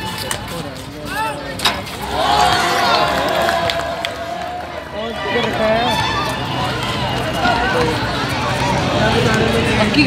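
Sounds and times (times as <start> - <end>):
outdoor crowd din: 0.0 - 10.0
people calling out and talking: 0.0 - 10.0.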